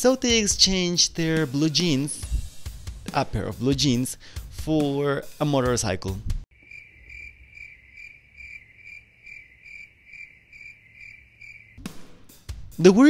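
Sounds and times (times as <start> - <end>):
crickets chirping: 6.5 - 11.8.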